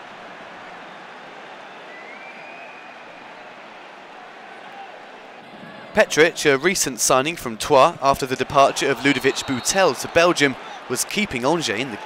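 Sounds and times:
stadium crowd hubbub: 0.0 - 12.0
faint rising whistle: 1.8 - 3.4.

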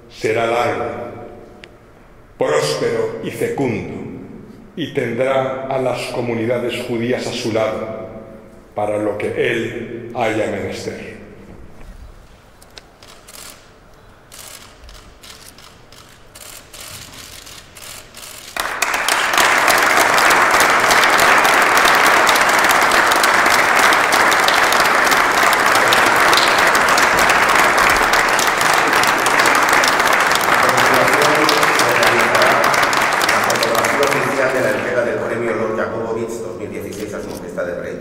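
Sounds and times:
audience applause: 18.5 - 35.9
person speaking: 24.4 - 38.0.

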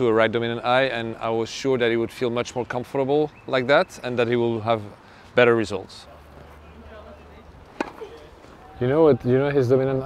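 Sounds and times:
tennis racket hitting ball: 7.8 - 8.2.

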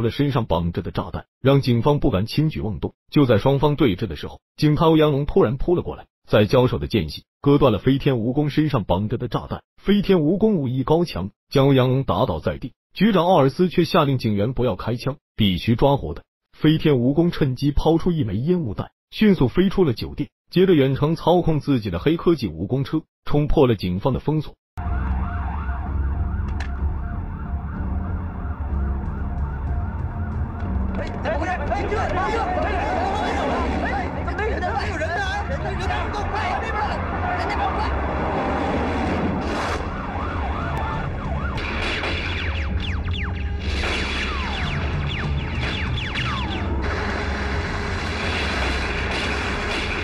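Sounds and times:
low rumble: 24.8 - 42.1
police siren yelping: 24.8 - 49.6.

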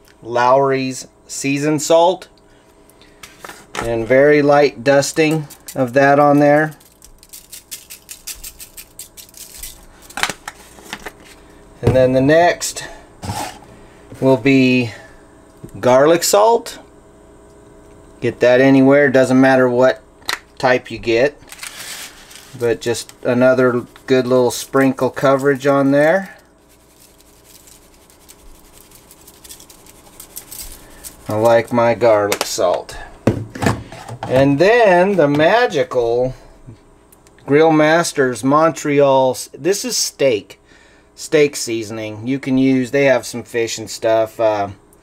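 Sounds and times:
faint steady hum: 0.0 - 45.0
salt shaker rattling: 5.0 - 10.2, 23.7 - 31.9.

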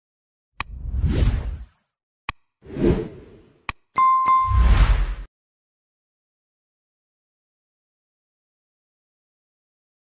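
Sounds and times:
whoosh sound effect: 2.7 - 3.4, 4.4 - 5.3
short bright ding: 4.0 - 4.7.

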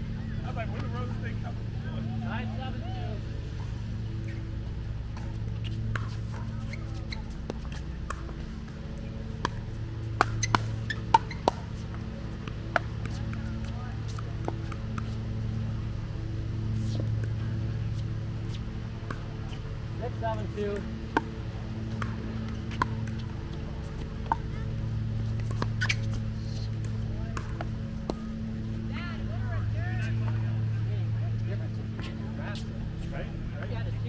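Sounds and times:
steady low hum: 0.0 - 34.0
paddles hitting plastic ball: 7.4 - 15.1, 20.4 - 23.3, 26.8 - 28.3.

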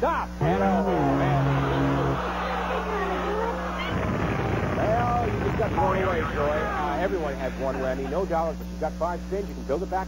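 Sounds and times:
audience groaning and murmuring: 0.4 - 8.5.

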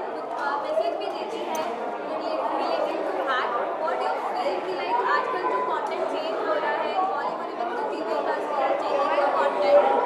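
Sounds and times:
crowd chatter indoors: 0.0 - 10.0.

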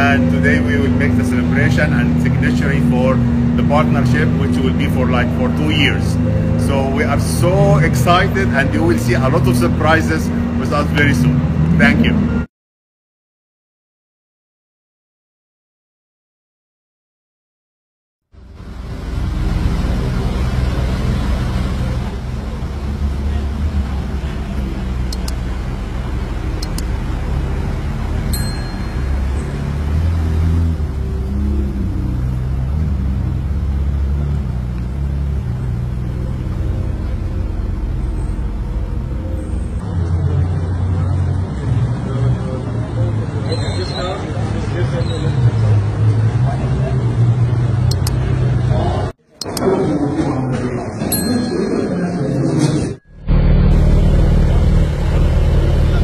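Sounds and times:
people talking: 0.0 - 12.3, 40.2 - 47.2, 47.9 - 53.0, 55.7 - 56.0
car engines idling: 0.0 - 12.4, 18.3 - 52.0, 53.0 - 56.0
car engine idling: 18.3 - 39.9, 53.0 - 56.0
outdoor noise: 18.3 - 56.0.

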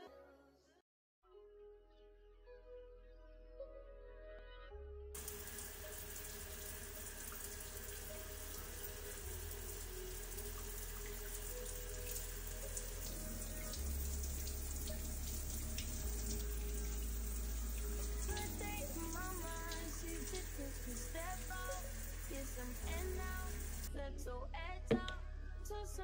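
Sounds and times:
shower water spraying on tiles: 5.2 - 23.9.

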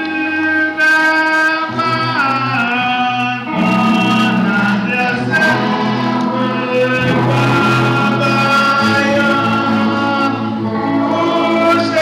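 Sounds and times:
gospel choir singing: 0.0 - 12.0.

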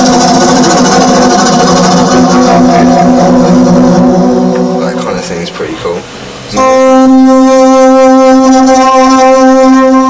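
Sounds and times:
synthesizer held chord: 0.0 - 10.0.

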